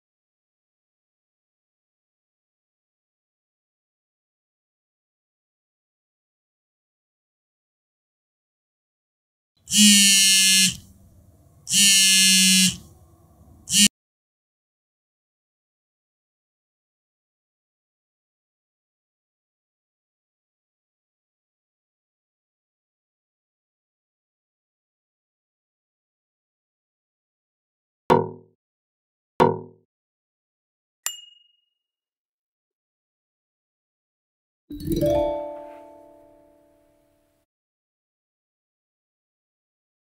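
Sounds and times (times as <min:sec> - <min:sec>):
electronic alarm buzzer: 0:09.6 - 0:10.9, 0:11.7 - 0:12.9, 0:13.6 - 0:13.9
bright ding: 0:31.1 - 0:31.6.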